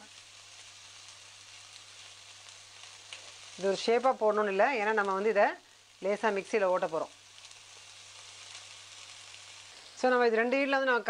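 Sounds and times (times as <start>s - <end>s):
batter sizzling in hot oil: 0.0s - 11.0s.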